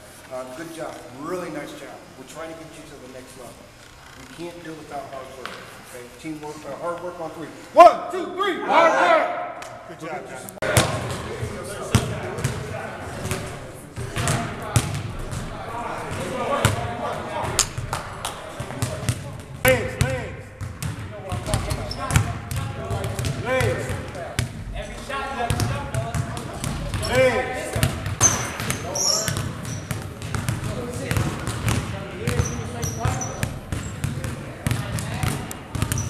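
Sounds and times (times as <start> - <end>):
voices in hall: 0.0 - 36.0
background chatter: 8.7 - 36.0
basketballs bouncing on hardwood: 14.0 - 15.6, 18.6 - 24.6, 25.4 - 36.0
sneaker squeaks: 20.8 - 22.3, 25.5 - 30.6, 31.2 - 34.8, 35.7 - 36.0.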